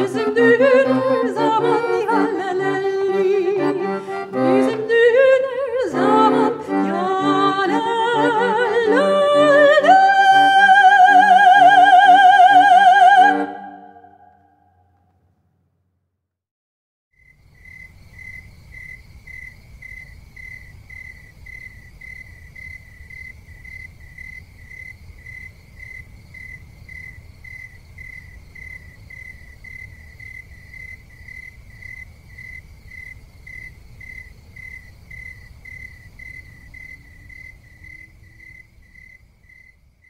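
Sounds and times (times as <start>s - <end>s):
high cricket-like chirping: 17.2s - 40.0s.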